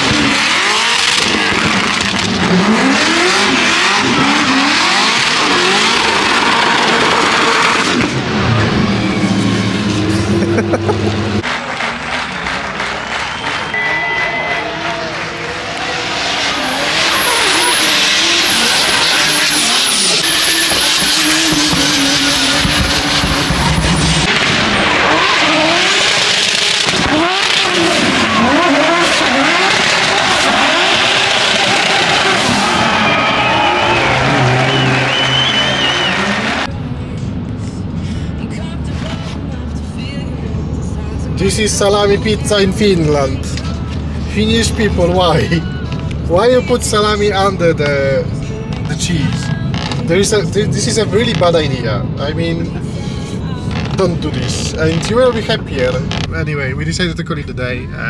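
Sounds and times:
car engines revving hard: 0.0 - 11.5, 14.6 - 36.7, 52.9 - 56.6
tyre screech: 13.7 - 36.7.

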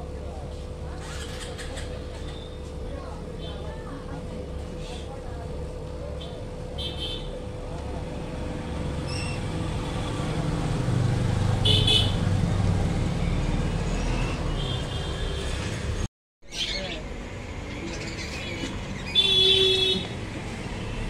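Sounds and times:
road traffic rumbling: 0.0 - 21.0.

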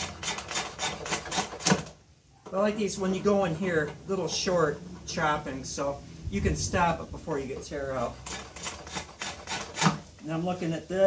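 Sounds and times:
drawknife scraping wood: 8.2 - 10.0.

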